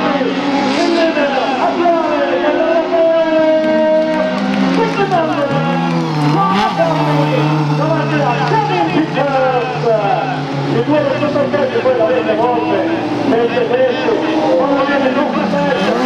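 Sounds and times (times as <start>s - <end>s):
racing car engines revving: 0.0s - 16.0s.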